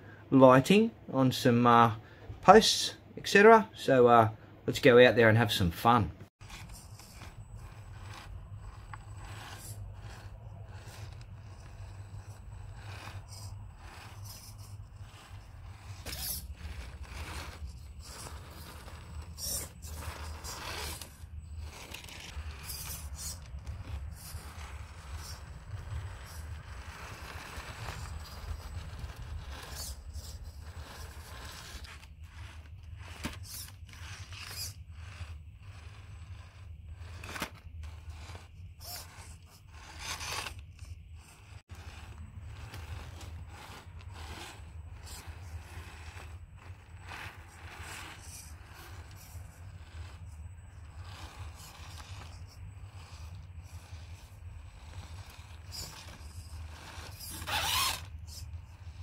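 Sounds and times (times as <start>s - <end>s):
tyres scraping on rock: 6.3s - 59.0s
toy car drivetrain drone: 6.4s - 59.0s.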